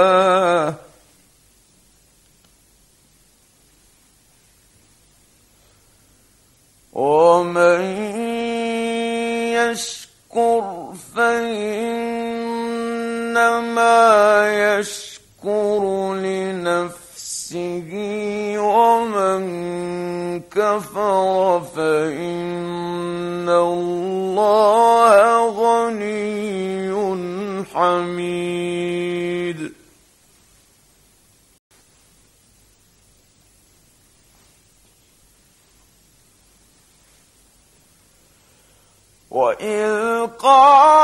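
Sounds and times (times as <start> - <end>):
man chanting melodically: 7.0 - 29.9, 39.3 - 41.0.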